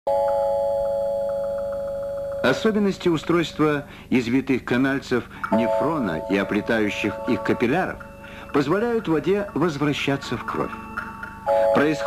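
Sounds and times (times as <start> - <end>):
chime ringing: 5.4 - 12.0.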